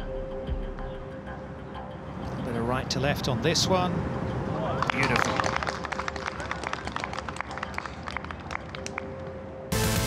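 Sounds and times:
crowd applause: 0:04.7 - 0:09.2
loud electronic music: 0:09.7 - 0:10.0.

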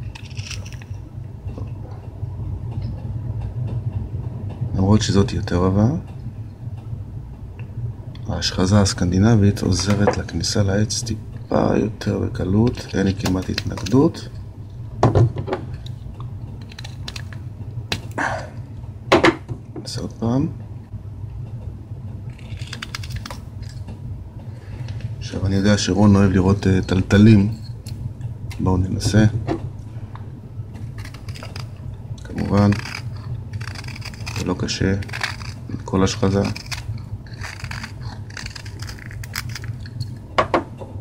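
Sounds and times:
steady low hum: 0:00.0 - 0:41.0
knife scraping wood: 0:22.3 - 0:23.8, 0:30.8 - 0:40.1.

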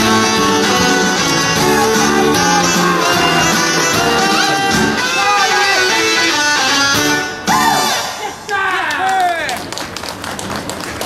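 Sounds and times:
audience clapping: 0:08.5 - 0:11.0.

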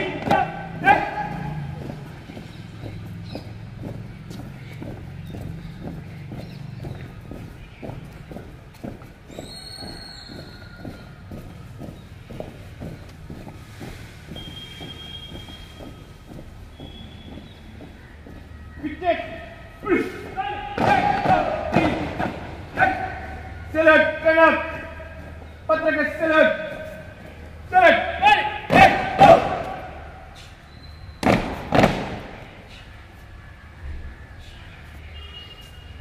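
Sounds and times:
shouted drill commands: 0:00.0 - 0:01.7, 0:18.8 - 0:27.0, 0:27.7 - 0:30.1
boots marching on brick path: 0:00.0 - 0:36.0.

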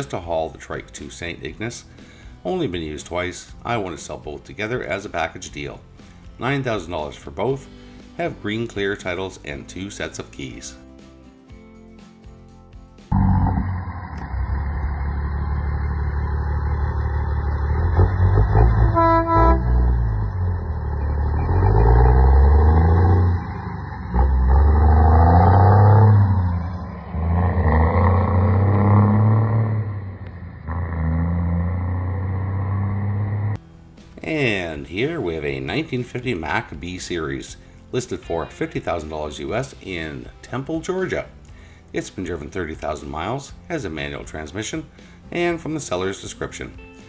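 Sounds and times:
diesel truck engine revving: 0:13.1 - 0:33.6
air horn blast: 0:18.5 - 0:20.8.

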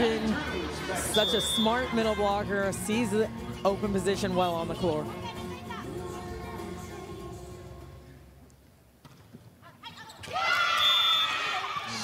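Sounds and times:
crowd voices in large hall: 0:00.0 - 0:04.3
music over arena loudspeakers: 0:00.0 - 0:08.2.

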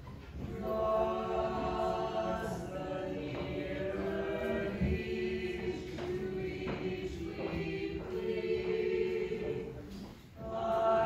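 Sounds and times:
church choir singing a hymn: 0:00.3 - 0:11.0.

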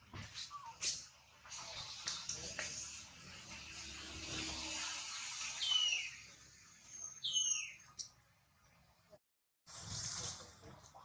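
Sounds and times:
whistled calls falling in pitch: 0:05.6 - 0:06.3.

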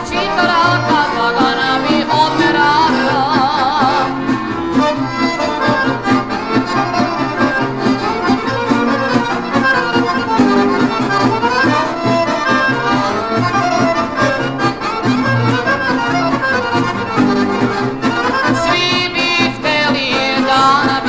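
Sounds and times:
accordion melody: 0:00.0 - 0:21.0
band beat: 0:00.0 - 0:21.0.

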